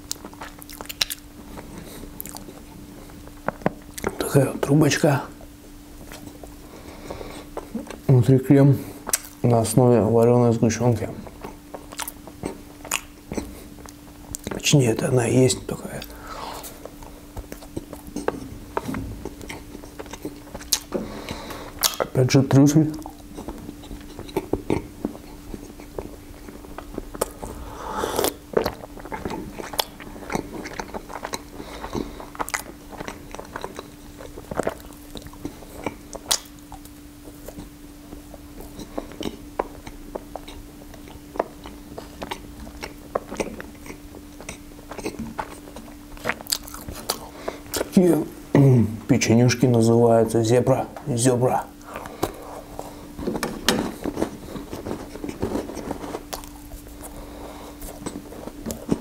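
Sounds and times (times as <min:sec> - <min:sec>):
wet mouth clicks: 0:00.0 - 0:01.2, 0:09.1 - 0:09.4, 0:21.8 - 0:22.1, 0:26.8 - 0:34.0, 0:34.6 - 0:37.7
chewing pastry: 0:00.0 - 0:48.2, 0:51.5 - 0:59.0
low steady hum: 0:00.0 - 0:59.0
sip from a mug: 0:27.4 - 0:28.8.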